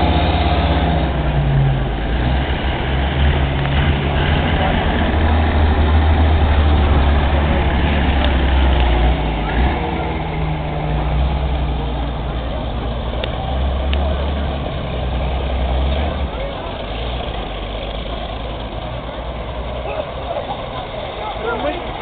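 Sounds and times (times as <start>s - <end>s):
vehicle engine droning past: 0.0s - 22.0s.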